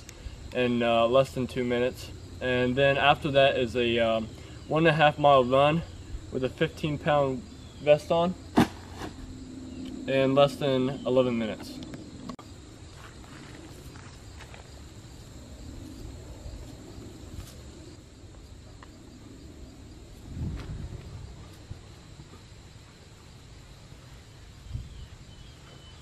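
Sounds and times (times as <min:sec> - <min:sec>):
high insect drone: 0:00.0 - 0:26.0.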